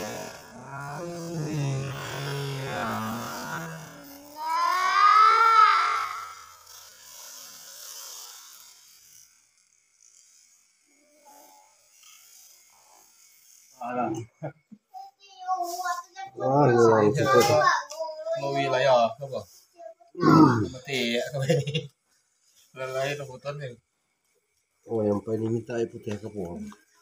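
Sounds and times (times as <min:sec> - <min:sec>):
man groaning: 0:00.0 - 0:04.0, 0:20.2 - 0:20.8.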